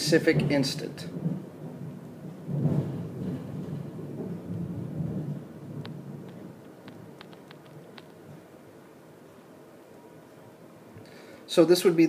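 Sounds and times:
stylus ticks on glass: 5.8s - 8.2s.

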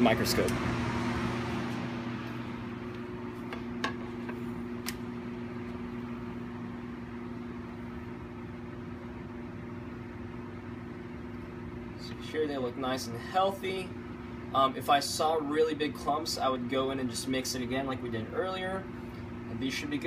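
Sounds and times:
laboratory equipment hum: 0.0s - 20.0s.

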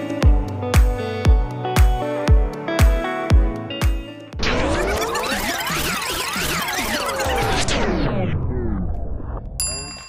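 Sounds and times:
tape rewind whoosh: 4.4s - 9.6s.

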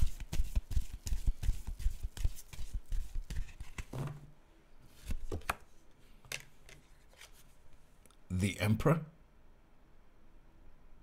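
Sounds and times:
cards being shuffled: 0.0s - 4.2s, 5.0s - 5.7s, 6.4s - 7.6s.

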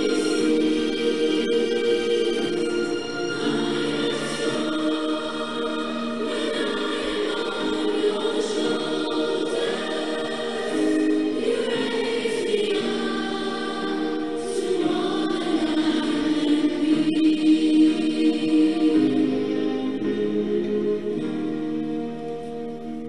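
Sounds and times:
choral singing: 0.0s - 21.4s.

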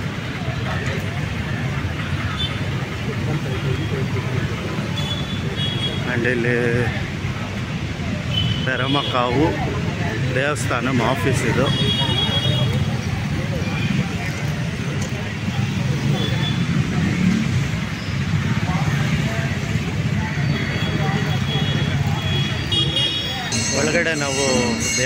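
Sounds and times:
street traffic rumble: 0.0s - 25.0s.

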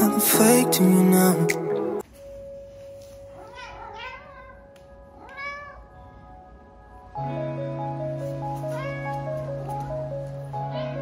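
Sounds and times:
music: 0.0s - 11.0s
cat meowing: 3.3s - 6.4s, 8.6s - 9.5s.

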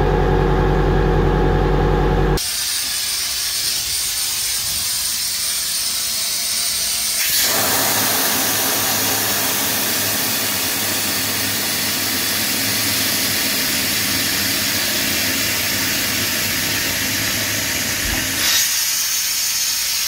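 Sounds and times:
engine humming: 0.0s - 2.4s.

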